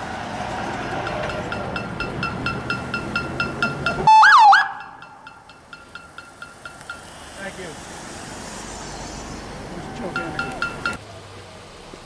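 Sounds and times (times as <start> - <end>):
police siren whoop: 4.0 - 4.8
approaching vehicle hiss: 7.0 - 10.1.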